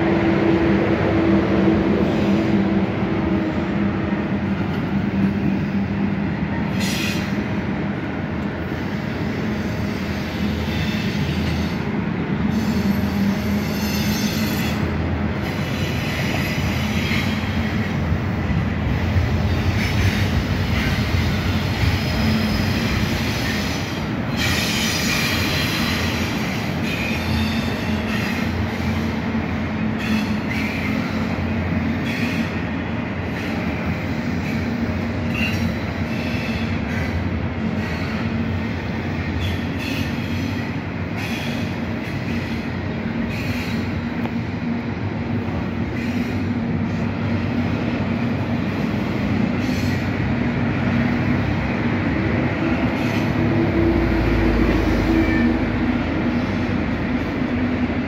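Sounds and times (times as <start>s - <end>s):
freight train wheels rumbling: 0.0s - 58.0s.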